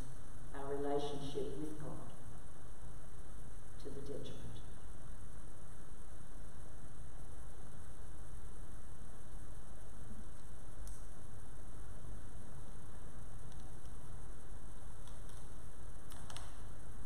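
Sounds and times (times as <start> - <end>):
low hum with faint hiss: 0.0 - 17.0.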